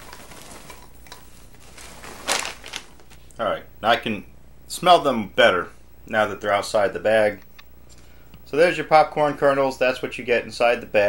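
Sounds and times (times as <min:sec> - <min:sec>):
popcorn sliding into a bowl: 0:00.0 - 0:03.2
plastic bag crinkling: 0:00.0 - 0:03.4.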